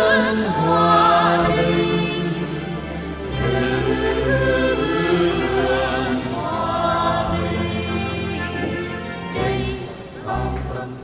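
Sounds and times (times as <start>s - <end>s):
choir singing a hymn: 0.0s - 11.0s
held low bass notes: 0.3s - 11.0s.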